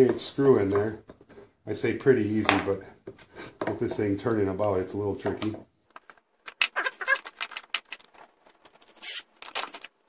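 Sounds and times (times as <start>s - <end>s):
small metal parts rattling: 6.0s - 10.0s.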